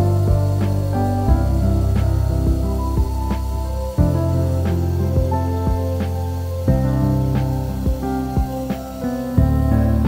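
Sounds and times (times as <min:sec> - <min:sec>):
instrumental music with held chords: 0:00.0 - 0:10.0.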